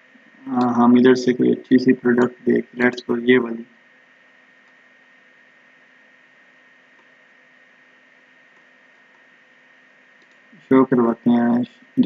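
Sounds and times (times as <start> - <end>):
low hum: 0.0 - 3.7, 10.6 - 12.0
microphone hiss: 0.0 - 12.0.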